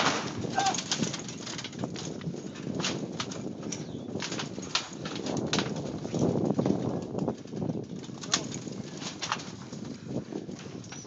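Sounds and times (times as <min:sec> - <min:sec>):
trampoline springs creaking: 0:00.0 - 0:11.0
wind rumble on microphone: 0:00.0 - 0:11.0.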